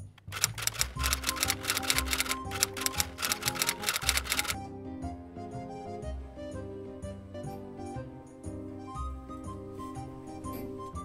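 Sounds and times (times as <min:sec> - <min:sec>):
typewriter key clacks: 0:00.0 - 0:04.6.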